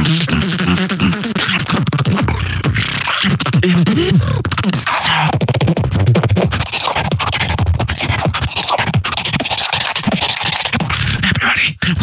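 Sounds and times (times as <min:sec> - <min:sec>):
person beatboxing: 0:00.0 - 0:12.0.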